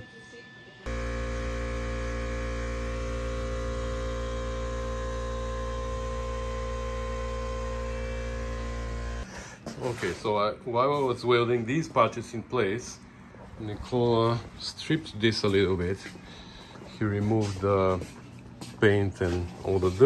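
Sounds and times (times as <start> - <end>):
electrical hum: 0.0 - 20.0.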